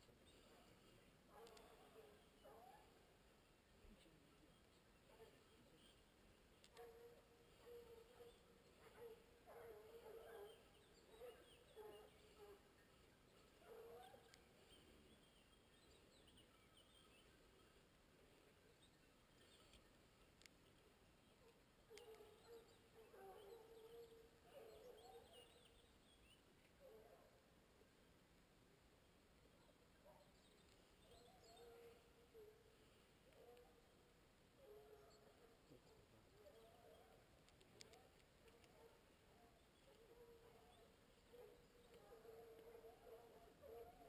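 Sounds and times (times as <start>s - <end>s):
distant hounds baying: 0.0s - 27.5s, 29.6s - 44.0s.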